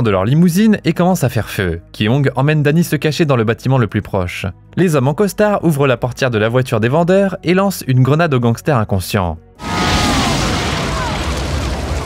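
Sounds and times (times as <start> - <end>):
explosion boom rumbling: 9.6 - 12.0.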